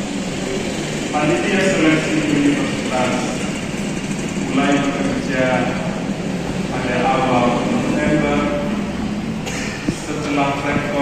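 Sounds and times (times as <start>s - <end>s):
man speaking over loudspeakers: 1.1s - 3.6s, 4.4s - 6.1s, 6.7s - 9.0s, 9.8s - 11.0s.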